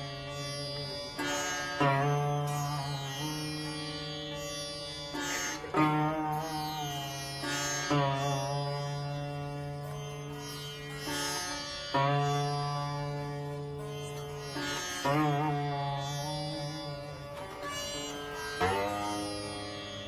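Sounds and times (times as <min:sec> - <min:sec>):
sitar plucked strokes: 0:00.0 - 0:20.0.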